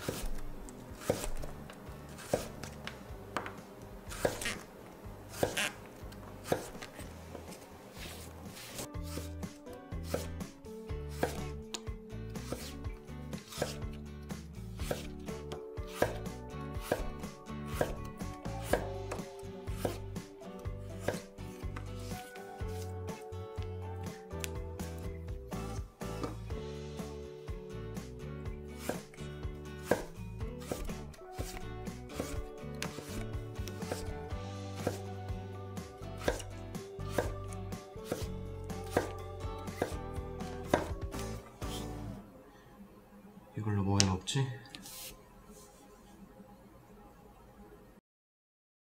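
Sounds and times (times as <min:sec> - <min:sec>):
knife chopping on wooden board: 0:00.0 - 0:01.6, 0:02.2 - 0:04.6, 0:05.3 - 0:05.8, 0:06.4 - 0:10.4, 0:11.1 - 0:11.8, 0:12.4 - 0:12.8, 0:13.4 - 0:13.9, 0:14.8 - 0:20.0, 0:20.9 - 0:23.2, 0:26.0 - 0:26.4, 0:28.8 - 0:29.2, 0:29.8 - 0:34.2, 0:34.8 - 0:35.1, 0:36.2 - 0:41.9.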